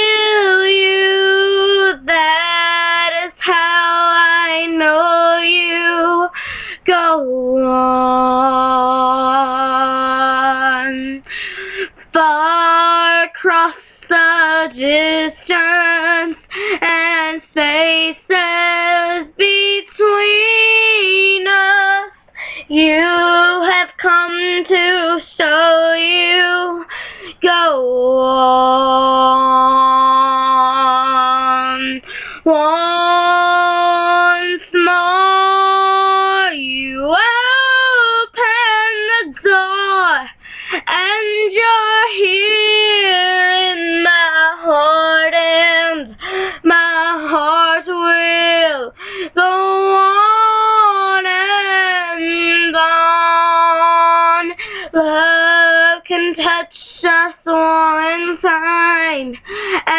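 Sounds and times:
girl singing unaccompanied: 0:00.0 - 0:59.9.

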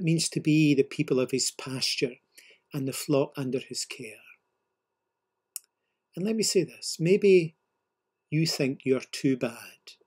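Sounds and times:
man speaking: 0:00.0 - 0:04.4, 0:06.1 - 0:07.6, 0:08.3 - 0:10.0.

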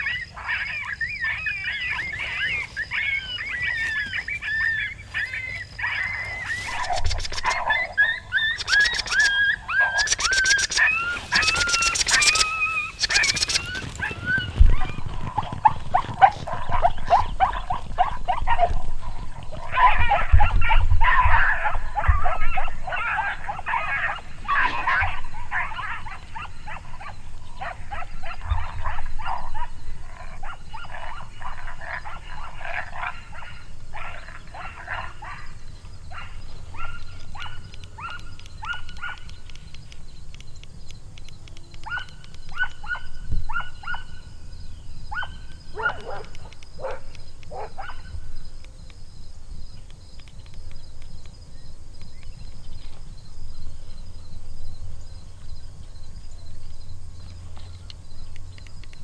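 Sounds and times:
coyotes yipping and howling: 0:00.0 - 0:59.0.

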